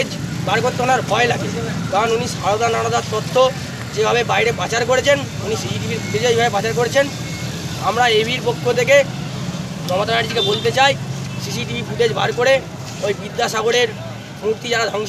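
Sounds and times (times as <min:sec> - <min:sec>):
man speaking heatedly: 0:00.0 - 0:07.2, 0:07.8 - 0:09.1, 0:09.9 - 0:15.0
vehicle engines humming: 0:00.0 - 0:15.0.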